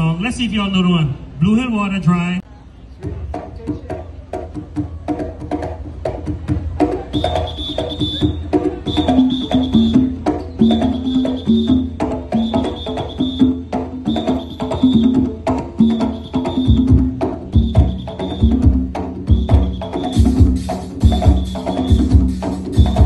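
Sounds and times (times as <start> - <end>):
hand drums: 3.0 - 23.0
knocking percussion: 3.0 - 23.0
deep bass drum beats: 13.3 - 23.0
conch shell horns melody: 19.3 - 23.0.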